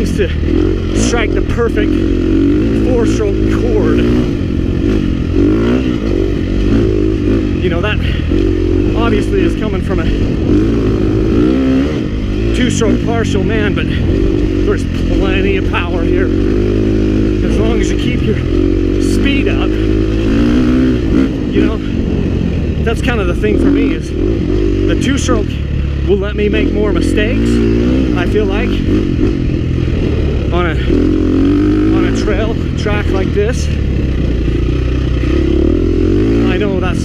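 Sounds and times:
dirt bike engine revving: 0:00.0 - 0:37.0.

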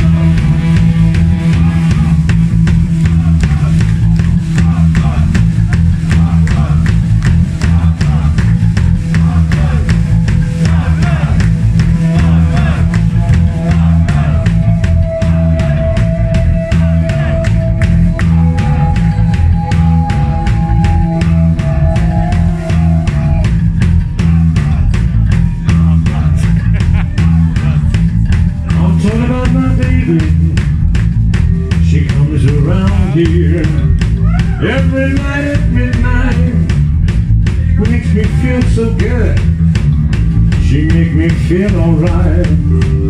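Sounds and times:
electric guitar lead lines: 0:00.0 - 0:04.6, 0:07.2 - 0:30.8
fast drum beat: 0:00.0 - 0:43.0
live rock band playing: 0:00.0 - 0:43.0.

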